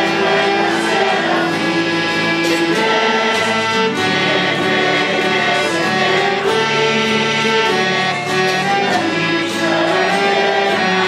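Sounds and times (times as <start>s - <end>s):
congregation singing a hymn: 0.0s - 11.0s.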